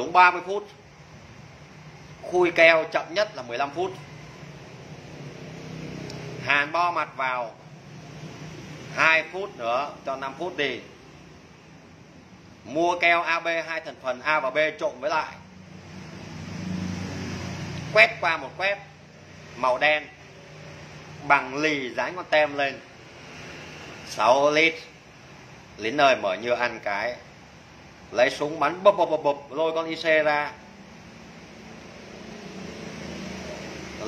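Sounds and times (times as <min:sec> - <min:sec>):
machine hum with hiss: 0:22.8 - 0:24.3.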